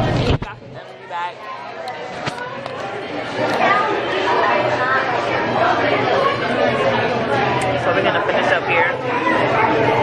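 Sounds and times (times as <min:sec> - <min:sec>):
diners chattering: 0:00.0 - 0:10.0.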